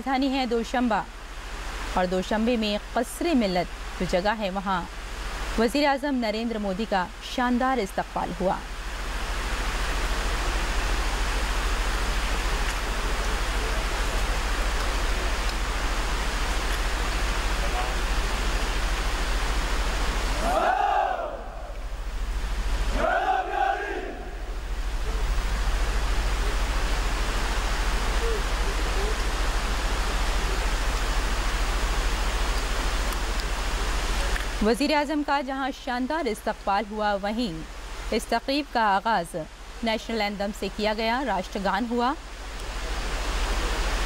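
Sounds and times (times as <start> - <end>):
fountains rushing: 0.2 - 35.3
drawn-out shouted commands: 22.9 - 24.4.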